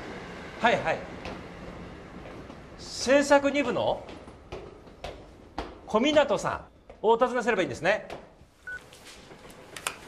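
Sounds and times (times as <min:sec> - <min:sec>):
high electronic phone beep: 0:08.6 - 0:08.8.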